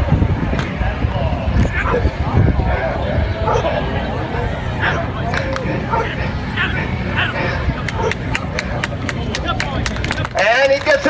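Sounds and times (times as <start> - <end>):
spectators' voices: 0.0 - 11.0
people clapping: 7.8 - 11.0.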